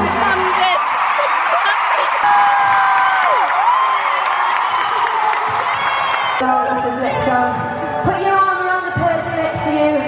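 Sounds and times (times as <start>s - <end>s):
arena crowd cheering and screaming: 0.0s - 10.0s.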